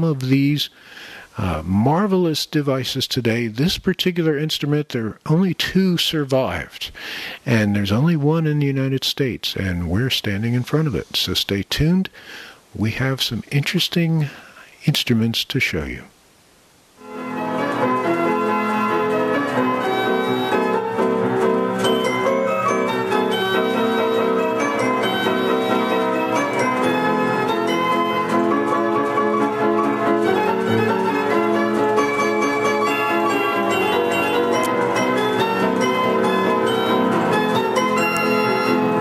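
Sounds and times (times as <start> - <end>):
mechanical orchestrion playing tune: 17.0 - 39.0.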